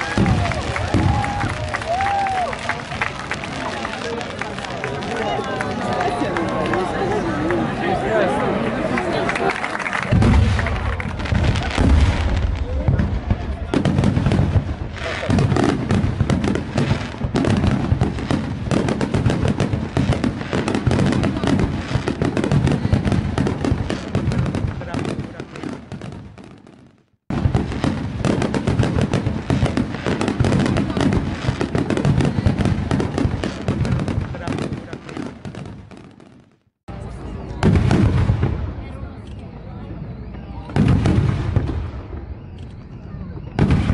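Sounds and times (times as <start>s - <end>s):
crowd voices: 0.0s - 26.1s, 27.6s - 35.4s, 36.9s - 43.9s
fireworks bangs and crackles: 0.0s - 43.9s.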